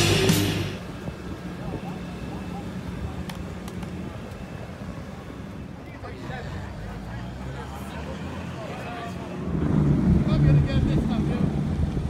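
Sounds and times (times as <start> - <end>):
heavy rock music: 0.0 - 0.8.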